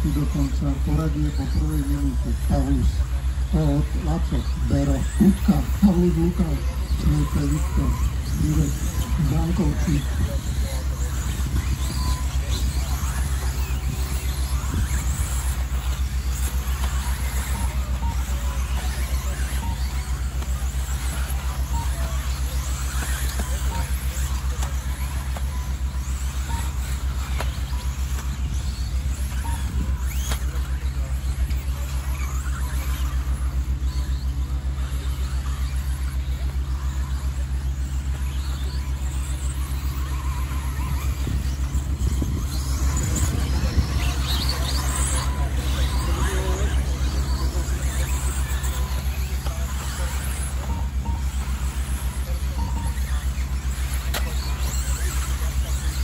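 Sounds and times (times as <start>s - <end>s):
electric motors whining: 0.0s - 56.0s
steady low hum: 0.0s - 56.0s.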